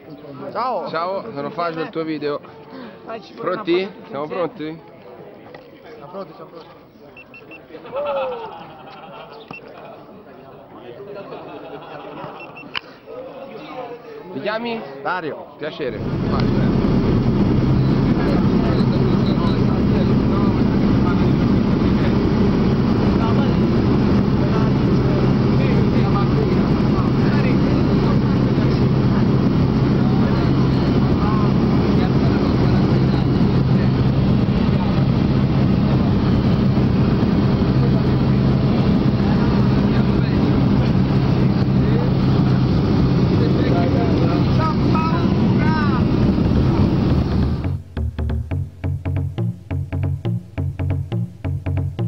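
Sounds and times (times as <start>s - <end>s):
propeller plane engine droning: 15.9s - 47.9s.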